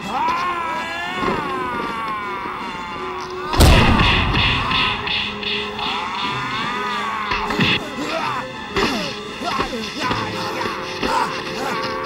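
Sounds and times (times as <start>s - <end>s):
pulsing background music: 1.1s - 12.0s
man groaning in pain: 5.8s - 9.8s.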